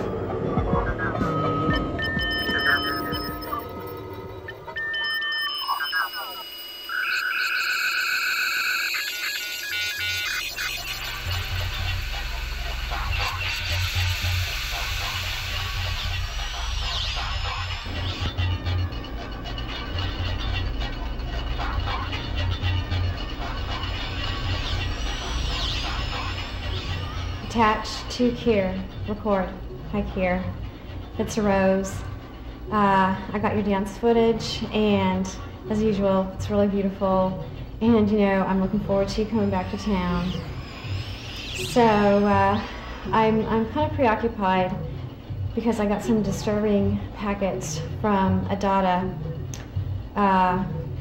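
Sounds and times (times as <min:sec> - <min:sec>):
electronic music: 0:00.0 - 0:32.2, 0:37.4 - 0:48.4
short beeping tone bursts: 0:01.4 - 0:11.0.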